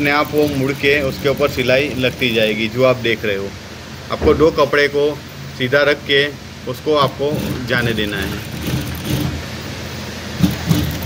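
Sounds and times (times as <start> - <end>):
sewing machine running steadily: 0.0 - 2.7, 7.0 - 9.6, 10.3 - 11.0.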